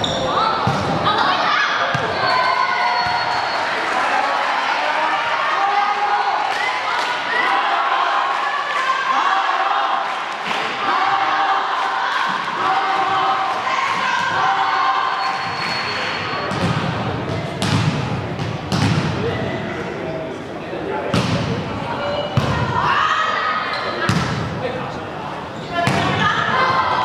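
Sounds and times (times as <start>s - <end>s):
players and spectators shouting: 0.0s - 16.5s, 21.8s - 24.1s, 25.7s - 27.0s.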